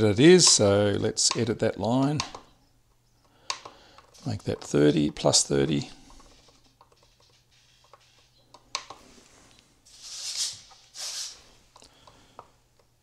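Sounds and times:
button and scroll wheel clicks: 6.1 - 9.0.

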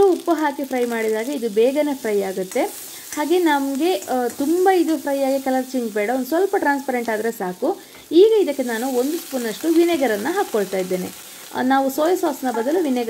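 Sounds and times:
vegetables sizzling in a wok: 0.0 - 13.0
woman talking: 0.0 - 13.0.

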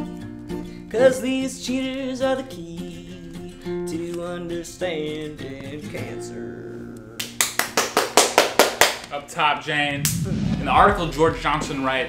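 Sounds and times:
man clapping hands: 7.2 - 9.1.

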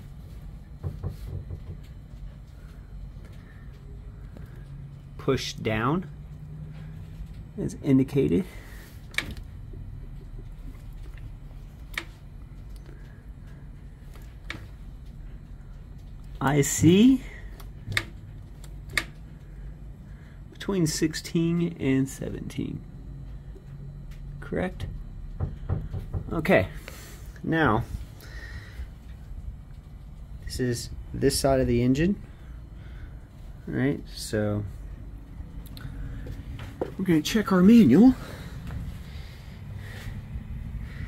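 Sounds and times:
low background hum: 0.0 - 41.0
low background rumble: 0.0 - 41.0.

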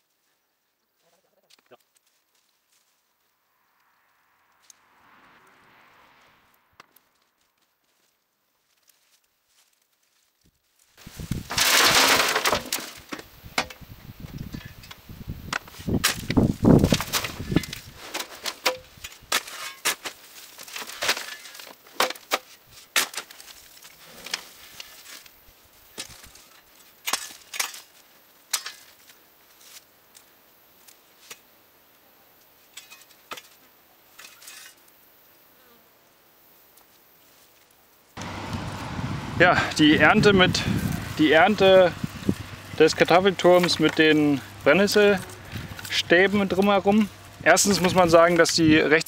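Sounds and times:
loud rushing scrapes: 3.5 - 7.5, 38.2 - 47.8
stony soil being dug: 39.8 - 48.8.

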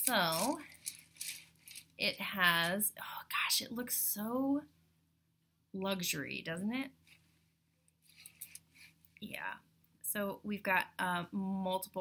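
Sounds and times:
necklace stones and chain clicking: 0.0 - 2.0, 8.1 - 8.7.

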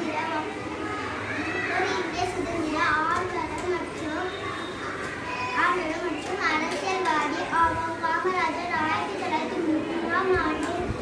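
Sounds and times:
girl speaking: 0.0 - 0.6, 1.7 - 4.3, 5.5 - 11.0.

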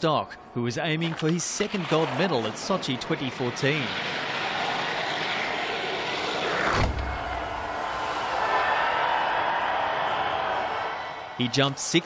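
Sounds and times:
rush of air: 4.2 - 8.8
ski jumper take-off thump: 4.3 - 8.4
skis hissing in icy tracks: 7.3 - 8.6.

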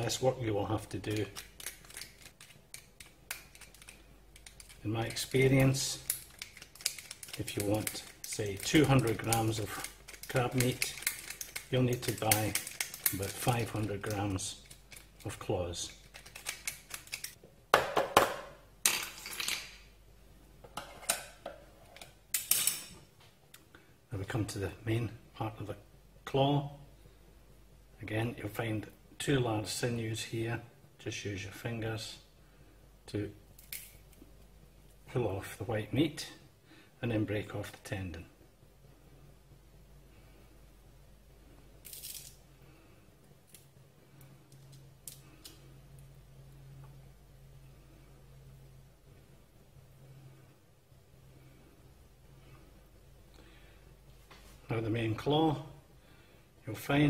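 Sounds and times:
crab shell crackling and clicking: 1.0 - 15.3, 15.9 - 17.4.

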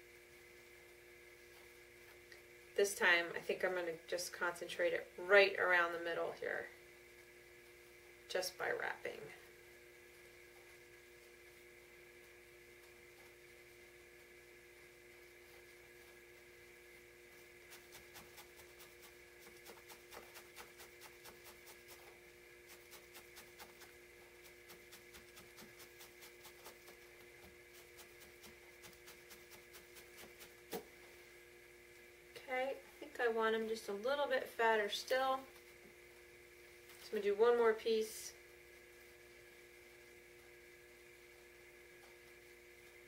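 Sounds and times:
low background hum: 0.0 - 43.0
felting needle stabbing wool: 17.6 - 22.1, 22.7 - 27.1, 27.7 - 31.0.

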